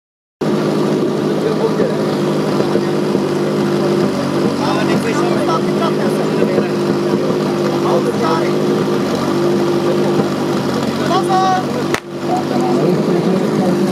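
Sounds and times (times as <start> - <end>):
pump engine humming: 0.4 - 13.9
faint voices: 0.8 - 13.9.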